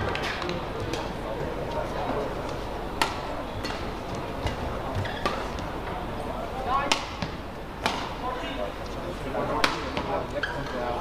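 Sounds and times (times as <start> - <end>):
court shoes squeaking: 0.0 - 6.2, 9.6 - 11.0
murmur of indoor hall: 0.0 - 11.0
racquets hitting shuttlecock: 2.9 - 5.7, 6.8 - 8.2, 9.6 - 10.2.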